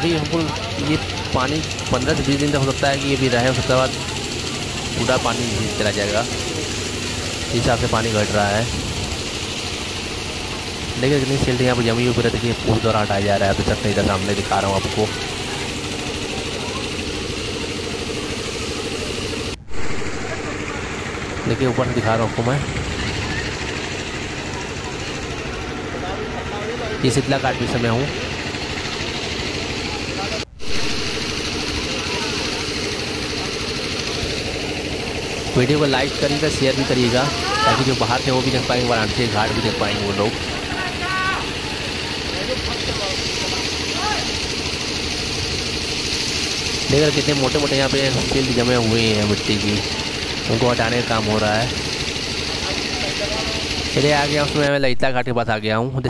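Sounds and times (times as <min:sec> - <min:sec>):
hose jet spraying water: 0:00.0 - 0:54.8
engine-driven water pump running: 0:00.0 - 0:56.0
hiss of water jet: 0:38.2 - 0:54.6.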